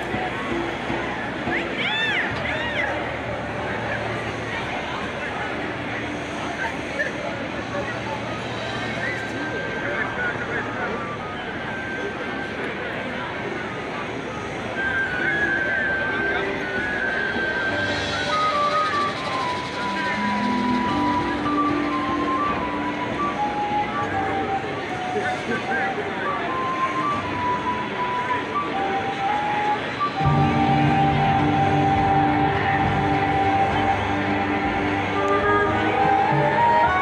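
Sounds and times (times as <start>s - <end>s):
solo flute melody: 8.5s - 37.0s
marching band playing: 17.4s - 23.4s, 30.0s - 37.0s.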